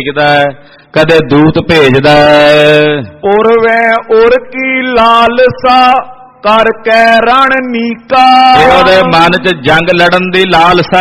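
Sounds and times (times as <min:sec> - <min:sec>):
man chanting verse: 0:01.0 - 0:11.0.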